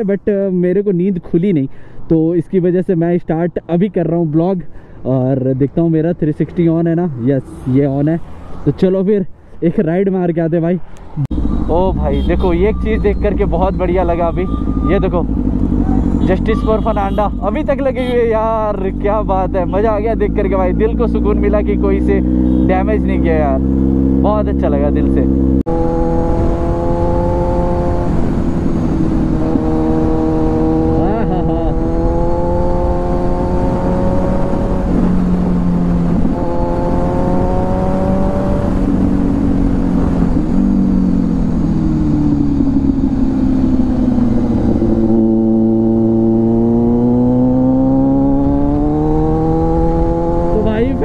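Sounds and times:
wind and road noise: 0.0 - 51.0
motorcycle engine revving: 11.1 - 51.0.

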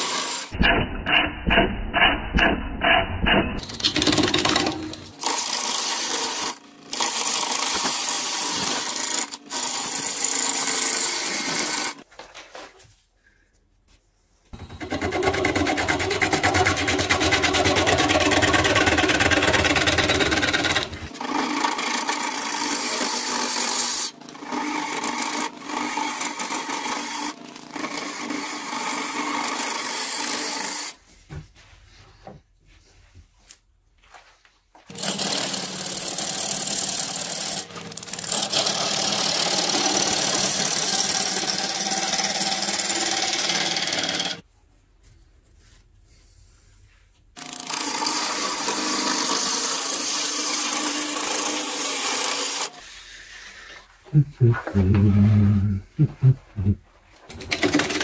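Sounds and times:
wood lathe gouge scraping wood: 14.6 - 30.9, 35.0 - 44.4, 47.4 - 53.0.

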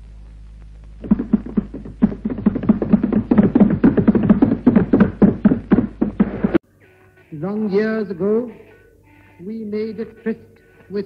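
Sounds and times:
rapid percussive thumps: 1.0 - 6.6.

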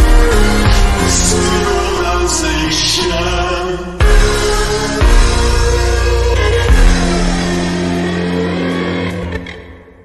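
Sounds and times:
slowed reverb-heavy music: 0.0 - 10.0.

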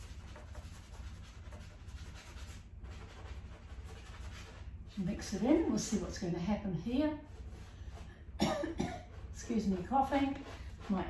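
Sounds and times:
sponge rubbing on canvas: 0.0 - 8.4, 9.0 - 11.0
steady low hum: 0.0 - 11.0.

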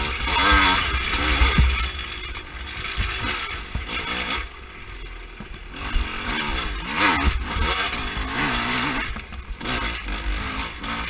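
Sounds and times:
dirt bike engine revving: 0.0 - 11.0
low rumble of wind and bumps: 0.0 - 11.0.

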